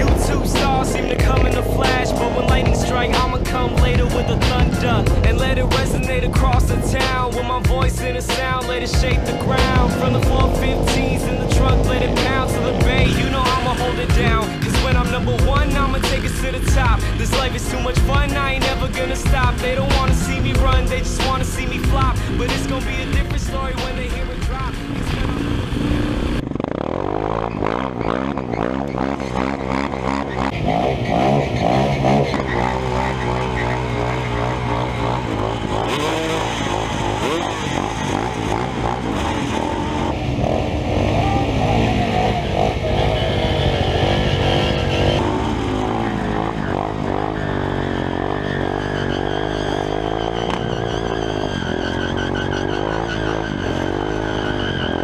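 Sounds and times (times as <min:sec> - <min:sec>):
rap music: 0:00.0 - 0:26.2, 0:27.6 - 0:55.0
motorcycle engines revving: 0:00.0 - 0:55.0.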